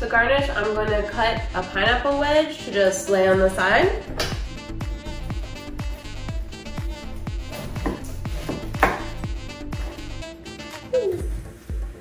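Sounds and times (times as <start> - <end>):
background music with beat: 0.0 - 12.0
knife chopping on wooden board: 7.6 - 9.1.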